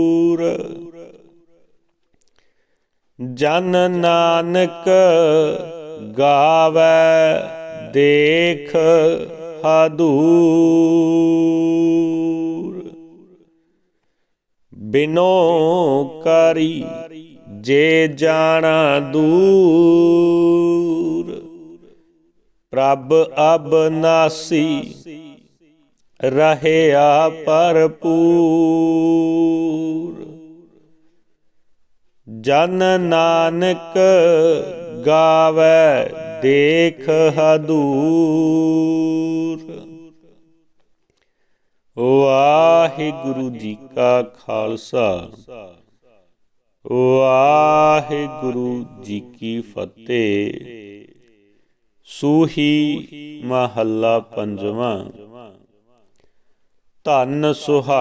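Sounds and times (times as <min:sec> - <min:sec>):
person chanting melodically: 0:00.0 - 0:01.7, 0:03.2 - 0:13.4, 0:14.7 - 0:22.0, 0:22.7 - 0:25.4, 0:26.2 - 0:30.9, 0:32.3 - 0:40.4, 0:42.0 - 0:45.9, 0:46.8 - 0:51.2, 0:52.0 - 0:55.3, 0:57.0 - 0:58.0.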